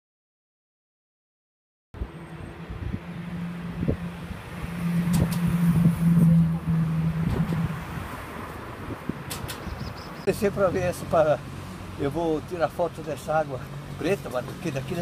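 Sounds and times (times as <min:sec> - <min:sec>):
traffic haze: 0:02.0 - 0:15.0
vehicle engine hum: 0:02.0 - 0:15.0
sharp clicks: 0:09.3 - 0:09.7.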